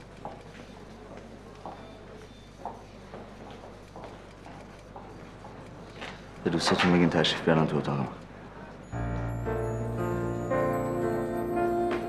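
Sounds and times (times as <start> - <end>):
footsteps on hard floor: 2.6 - 6.2.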